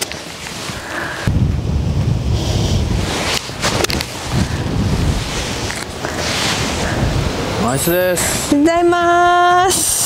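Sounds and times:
wind buffeting microphone: 0.6 - 10.0.

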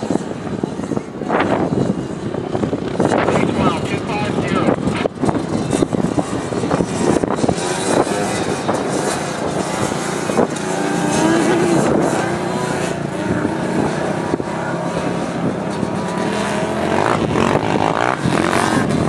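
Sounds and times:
truck engine working hard: 0.0 - 19.0.

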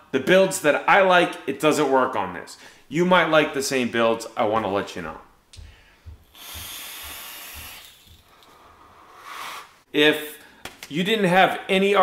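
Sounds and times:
air hissing through atomizer: 6.2 - 9.9.

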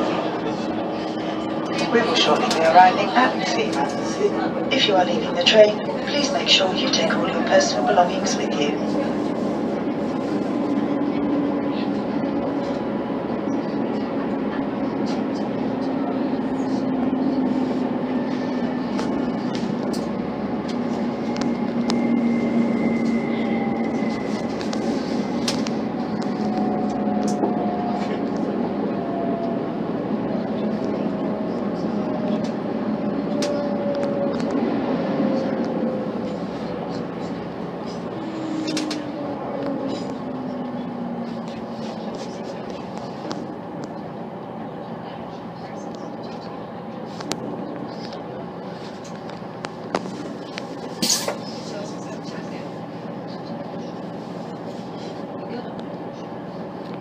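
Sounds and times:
diesel engine: 0.0 - 57.0
train wheels rumbling on rails: 0.0 - 57.0
whining tones sinking in pitch: 20.5 - 24.6.

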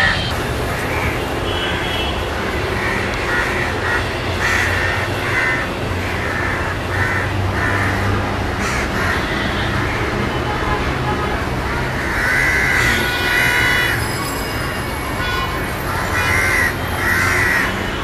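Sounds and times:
crows cawing: 0.0 - 10.1, 11.7 - 14.1, 15.8 - 18.0.

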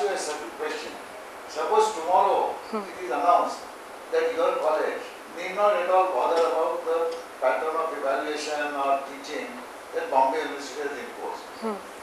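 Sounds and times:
person talking: 11.6 - 11.8.

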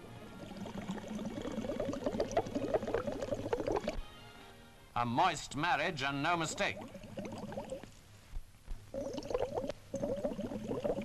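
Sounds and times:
stream bubbling and gurgling: 0.0 - 4.0, 6.2 - 7.9, 8.9 - 11.0.

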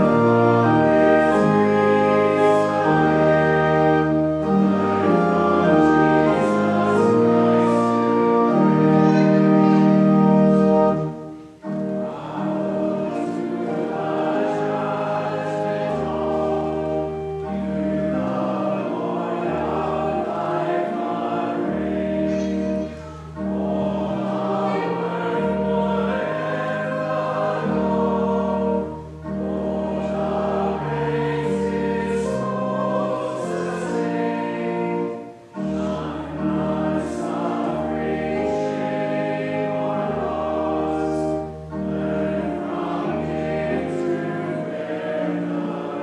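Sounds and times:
congregation singing a hymn: 0.0 - 46.0
organ chords: 0.0 - 46.0.

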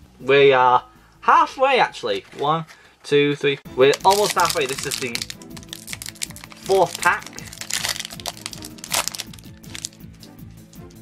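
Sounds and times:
background music: 0.0 - 11.0
foil wrapper crackling: 3.8 - 10.0.

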